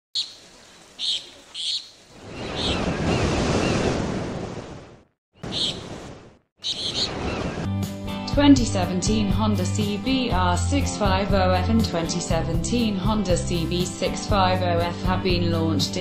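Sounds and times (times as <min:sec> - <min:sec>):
ocean waves washing in: 0:00.4 - 0:07.8
music: 0:07.6 - 0:16.0.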